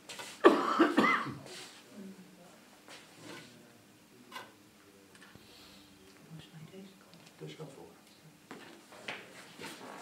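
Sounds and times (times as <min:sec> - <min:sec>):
person coughing: 0:00.4 - 0:01.4.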